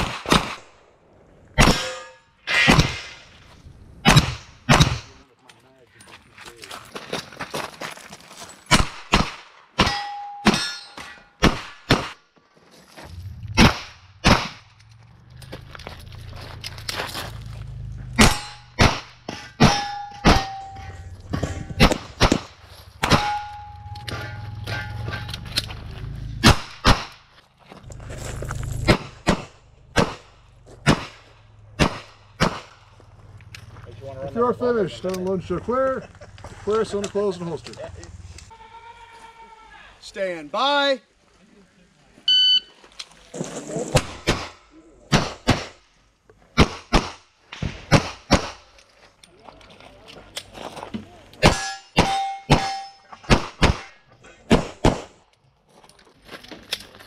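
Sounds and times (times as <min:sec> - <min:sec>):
steel target ringing: 0:01.6 - 0:02.7, 0:09.8 - 0:11.4, 0:18.2 - 0:22.2, 0:23.0 - 0:25.5, 0:51.5 - 0:53.3.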